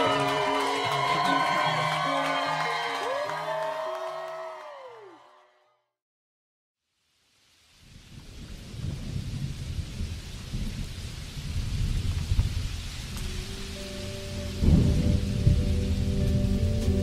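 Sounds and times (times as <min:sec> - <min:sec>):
steady instrument notes: 0:00.0 - 0:03.6
rain: 0:06.9 - 0:17.0
rolling thunder: 0:07.9 - 0:13.3, 0:14.5 - 0:16.7.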